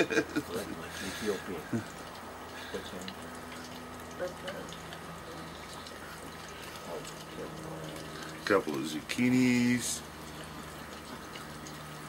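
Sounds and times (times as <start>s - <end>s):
fryer low hum: 0.0s - 12.0s
hot oil bubbling and crackling: 0.0s - 12.0s.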